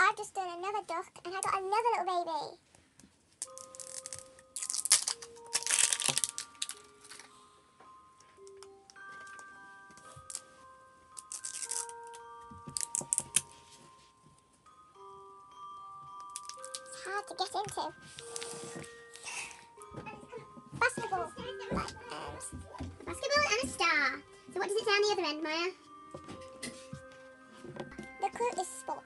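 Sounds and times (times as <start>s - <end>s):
plastic wrapping crinkling: 3.4s - 7.4s, 8.4s - 14.5s, 16.1s - 19.8s
chiming background music: 3.4s - 29.0s.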